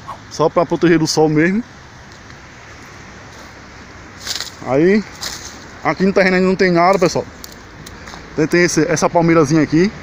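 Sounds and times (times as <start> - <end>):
road traffic rushing: 0.0 - 10.0.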